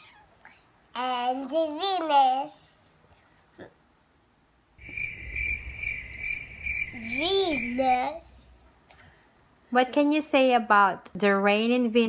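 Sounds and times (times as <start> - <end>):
low hum: 4.8 - 8.8.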